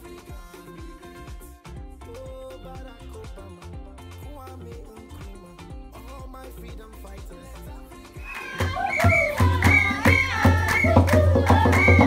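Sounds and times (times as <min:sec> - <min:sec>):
rhythmic hand-clapping: 0:00.0 - 0:12.0
women singing together: 0:08.2 - 0:12.0.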